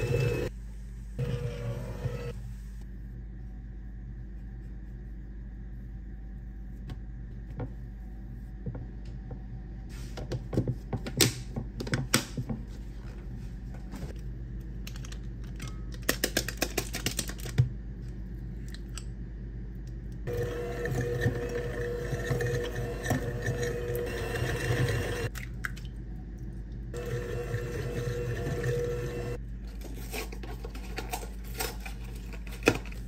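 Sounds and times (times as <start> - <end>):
electric hand mixer beating: 0.0 - 0.5, 20.3 - 25.3, 27.0 - 29.4.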